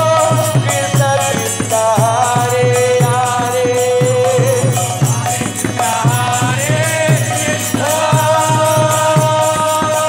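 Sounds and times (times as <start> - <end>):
drum strokes: 0.0 - 10.0
jingling percussion: 0.0 - 10.0
person singing a chant: 0.0 - 10.0.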